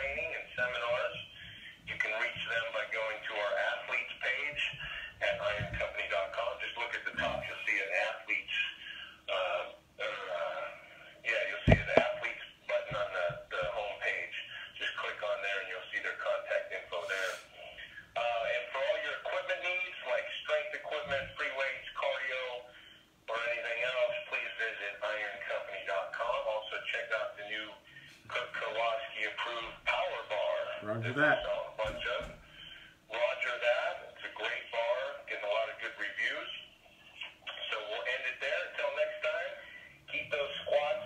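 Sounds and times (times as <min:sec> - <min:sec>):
person speaking: 0:00.0 - 0:22.6, 0:25.2 - 0:41.0.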